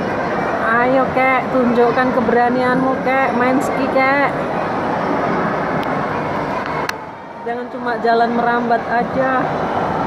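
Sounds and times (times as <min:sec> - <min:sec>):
ice rink hubbub: 0:00.0 - 0:10.0.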